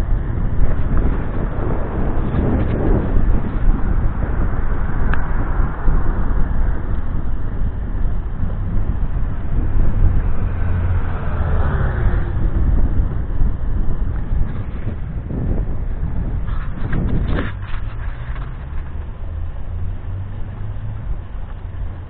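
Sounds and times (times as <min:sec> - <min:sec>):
road rumble: 0:00.0 - 0:22.0
wind on microphone: 0:00.0 - 0:22.0
vehicle passing by: 0:01.0 - 0:22.0.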